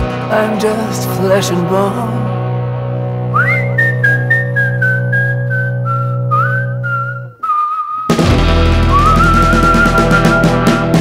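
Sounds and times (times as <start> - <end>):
folk-rock band playing: 0.0 - 4.7, 8.1 - 11.0
whistled melody: 3.2 - 11.0.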